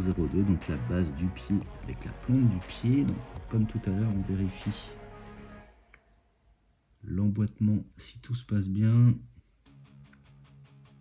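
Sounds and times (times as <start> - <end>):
man speaking: 0.0 - 5.1, 7.0 - 9.3
plucked guitar background music: 0.0 - 5.2, 9.7 - 11.0
bass line: 0.0 - 5.7.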